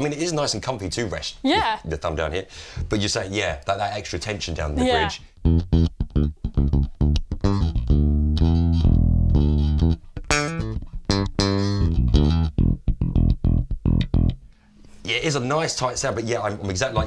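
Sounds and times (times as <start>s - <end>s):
electric bass plucked notes: 4.8s - 14.5s.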